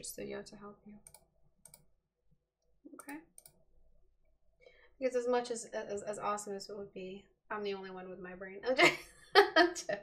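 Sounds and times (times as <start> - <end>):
computer mouse clicks: 1.0 - 1.9, 3.0 - 3.6.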